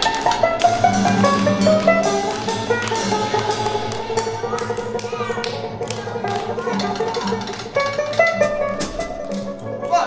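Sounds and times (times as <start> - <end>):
drum kit with cymbals: 0.0 - 9.6
banjo: 0.0 - 10.0
plucked guitar: 0.0 - 10.0.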